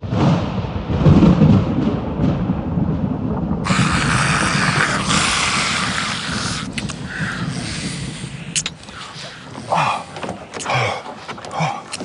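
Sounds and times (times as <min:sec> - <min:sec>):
deep rumbling noise: 0:00.0 - 0:11.8
steady hiss: 0:03.6 - 0:10.2.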